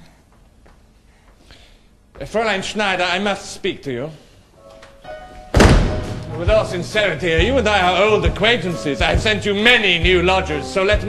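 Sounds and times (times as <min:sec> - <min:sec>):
faint held musical tones: 0:03.6 - 0:11.0
loud bassy thud: 0:05.6 - 0:06.3.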